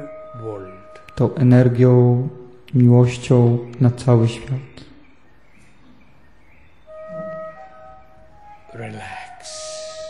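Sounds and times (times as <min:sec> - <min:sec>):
held musical tone: 0:00.0 - 0:04.8, 0:06.6 - 0:10.0
faint steady hiss: 0:00.0 - 0:10.0.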